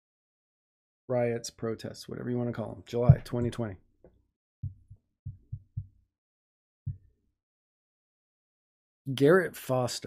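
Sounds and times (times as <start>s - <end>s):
low dull thumps: 3.0s - 3.7s, 4.6s - 6.0s, 6.9s - 7.1s.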